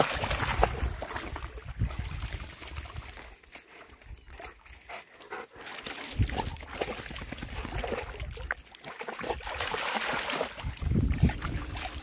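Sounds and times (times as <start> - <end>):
dog splashing in shallow water: 0.0 - 12.0.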